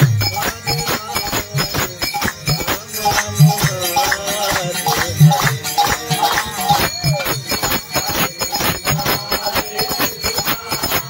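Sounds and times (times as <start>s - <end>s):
hand cymbals and jingling bells: 0.0s - 11.0s.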